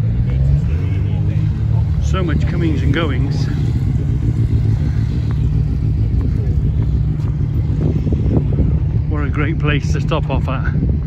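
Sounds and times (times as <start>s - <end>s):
motorcycle engine low rumble: 0.0s - 11.0s.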